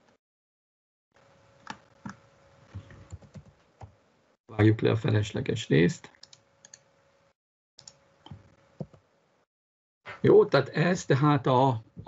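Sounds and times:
computer keyboard typing: 3.1 - 3.5.

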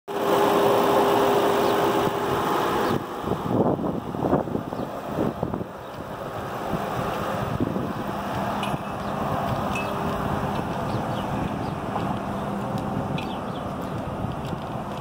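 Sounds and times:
car engine idling: 0.1 - 15.0.

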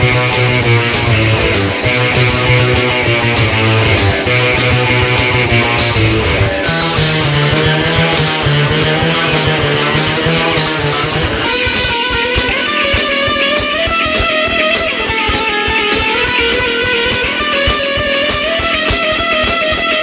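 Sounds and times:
distorted electric guitar: 0.0 - 20.0
drums fast steady beat: 0.0 - 20.0.

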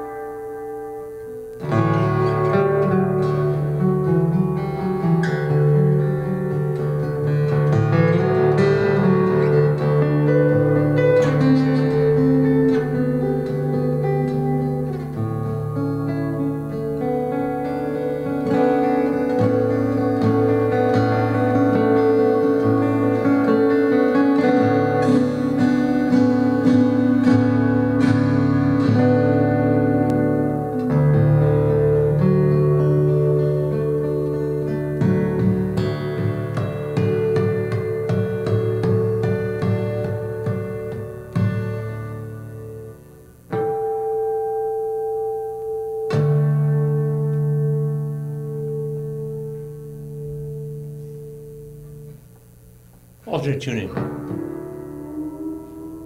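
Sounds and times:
fingerstyle acoustic guitar: 0.0 - 56.0.

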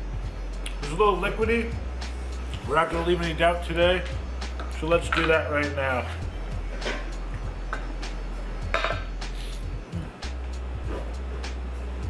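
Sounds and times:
background music with low bass: 0.0 - 12.0
cup knocking against ceramic sink: 8.7 - 9.1.

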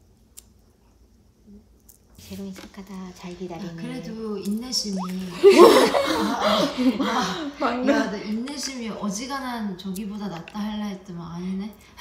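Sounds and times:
people laughing loudly: 5.3 - 7.8.

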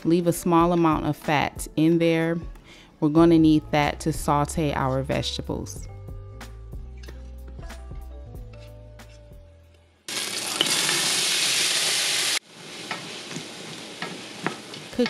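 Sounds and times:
background music: 0.0 - 10.1
vegetables sizzling in hot fat: 10.1 - 15.0.

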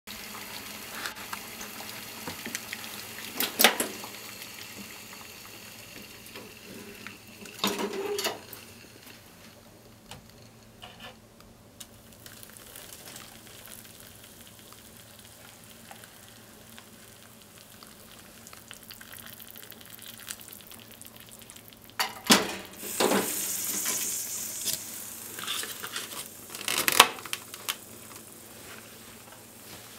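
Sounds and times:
boiling water hiss: 0.1 - 29.9.

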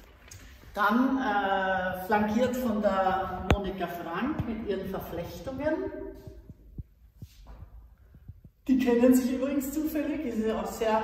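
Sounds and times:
faint low thumps: 3.3 - 8.7.

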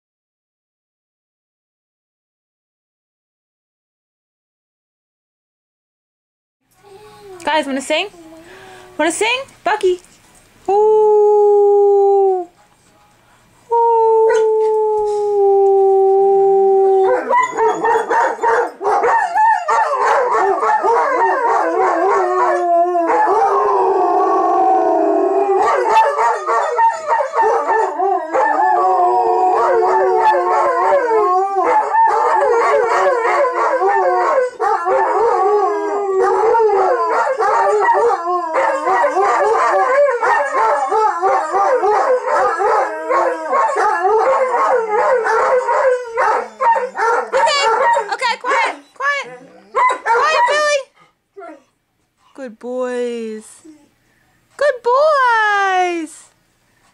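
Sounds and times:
dogs howling: 13.9 - 50.8.

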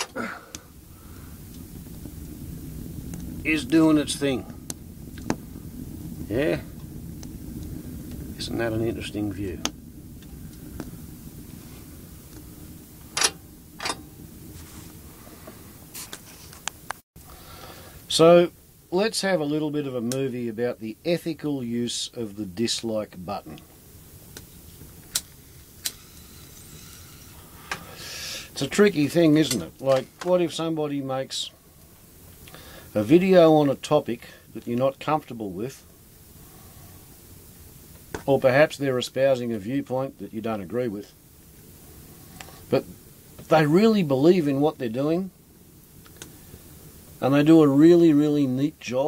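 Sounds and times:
fire burning in a stove: 0.0 - 49.0.

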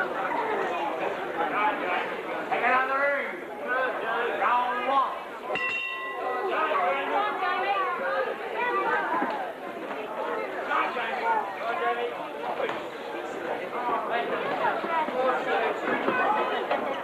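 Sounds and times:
crowd chatter in a hall: 0.0 - 17.0
ring bell struck: 5.5 - 6.4.

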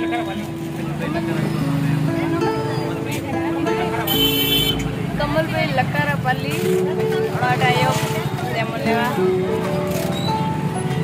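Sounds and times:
people talking: 0.0 - 10.1.

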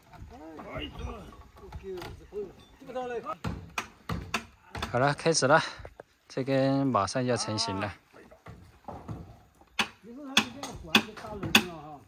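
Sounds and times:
knocks on timber beam: 3.4 - 5.0, 8.5 - 11.8.

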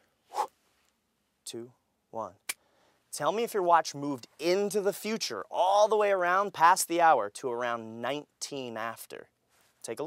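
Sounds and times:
man counting down: 1.4 - 9.2.

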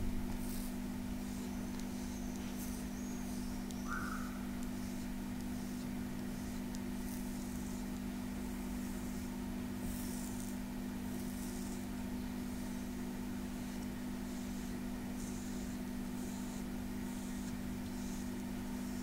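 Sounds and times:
low electrical hum: 0.0 - 19.0
stone scraper swishing over skin: 0.3 - 19.0.

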